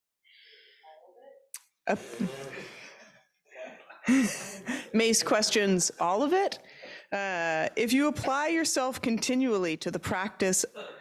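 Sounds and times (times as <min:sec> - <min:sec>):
woman laughing: 0:04.0 - 0:05.1.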